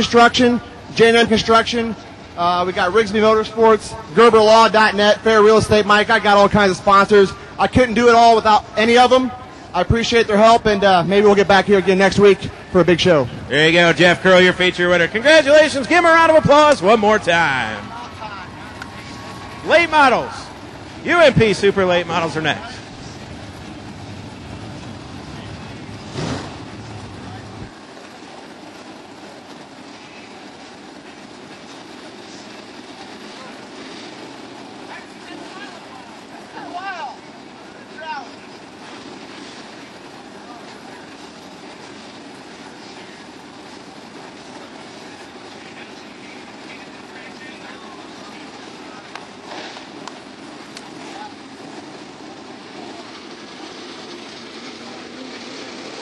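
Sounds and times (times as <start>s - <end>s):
machinery hum: 0.0s - 56.0s
voices of people nearby: 0.0s - 56.0s.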